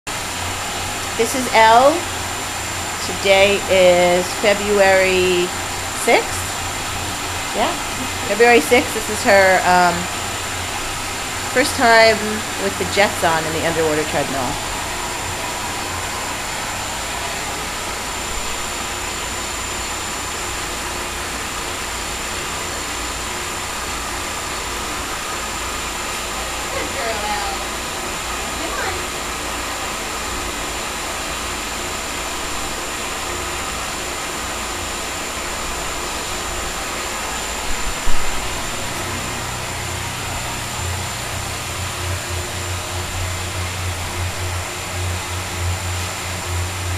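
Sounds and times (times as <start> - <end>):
water jets churning: 0.1 - 46.9
thin high whine: 0.2 - 46.9
low hum: 35.5 - 46.9.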